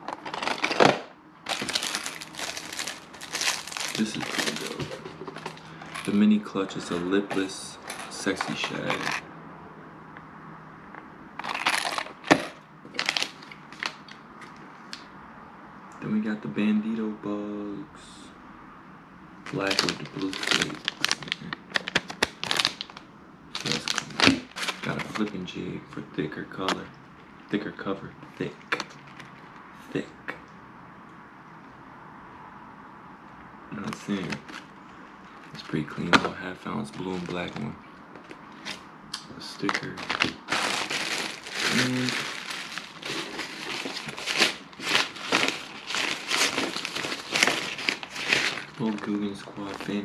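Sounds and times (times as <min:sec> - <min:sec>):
plastic packaging crinkling: 0:00.1 - 0:06.3, 0:07.4 - 0:09.2, 0:11.4 - 0:14.2, 0:19.5 - 0:25.4, 0:35.5 - 0:38.8, 0:39.5 - 0:50.0.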